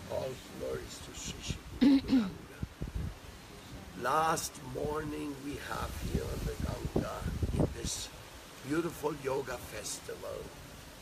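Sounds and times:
man clearing his throat: 1.8 - 2.4.

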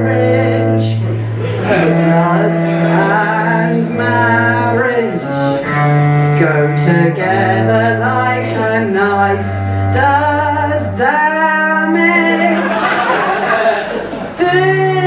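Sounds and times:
woman singing: 0.0 - 5.9, 6.8 - 12.8, 14.4 - 15.0
cello bowed low notes: 0.0 - 12.9.

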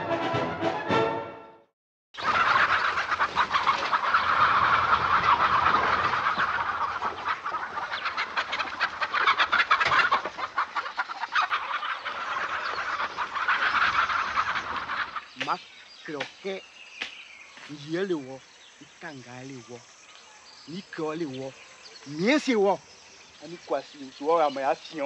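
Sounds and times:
chickens squawking and clucking: 2.2 - 16.6.

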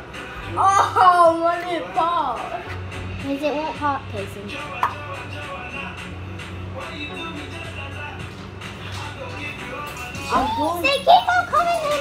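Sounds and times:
background music with low beat: 0.0 - 12.0.

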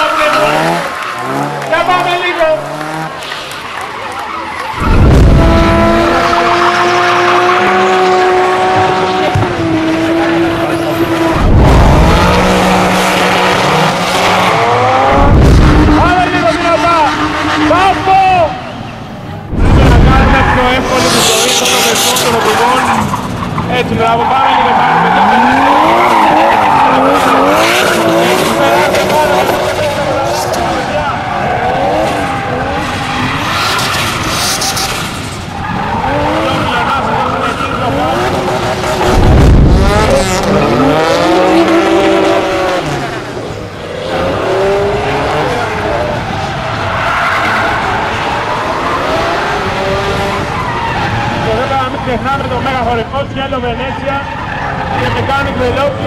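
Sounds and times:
car engine revving: 0.0 - 56.0
tyres squealing and skidding: 0.0 - 56.0
loud low rumble: 19.5 - 20.7.

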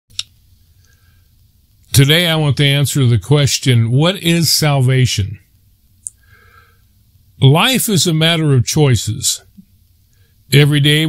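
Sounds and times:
faint low hum: 0.1 - 11.0
person speaking: 1.9 - 6.2, 7.4 - 9.6, 10.5 - 11.0.

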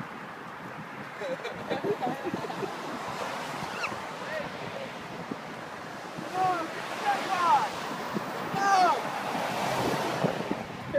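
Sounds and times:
road traffic rushing: 0.0 - 10.9
wind buffeting microphone: 0.0 - 10.9
high voices shouting: 6.2 - 7.7, 8.5 - 9.1.

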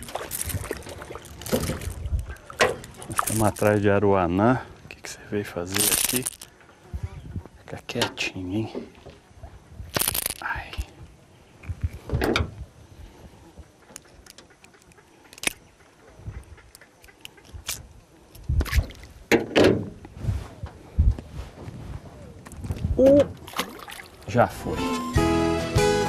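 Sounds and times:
fish splashing in water: 0.0 - 3.6, 23.4 - 24.3.

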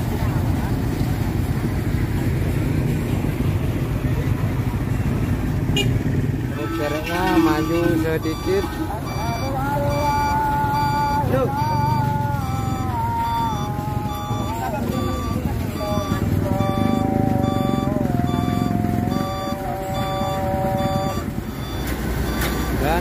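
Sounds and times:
diesel trucks rumbling: 0.0 - 23.0
reversing alarm beeping: 6.6 - 23.0.

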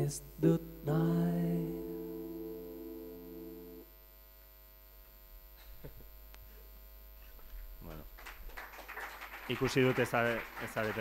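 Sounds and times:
low electrical hum: 0.0 - 11.0
chanted note: 0.6 - 4.0.

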